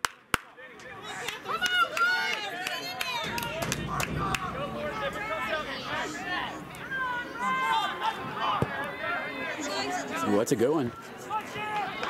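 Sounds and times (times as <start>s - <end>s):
voices shouting and calling: 0.6s - 12.0s
sharp claps or knocks: 2.6s - 5.1s.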